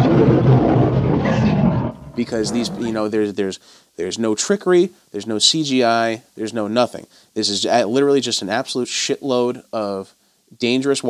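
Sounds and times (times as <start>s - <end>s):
lions growling: 0.0s - 3.1s.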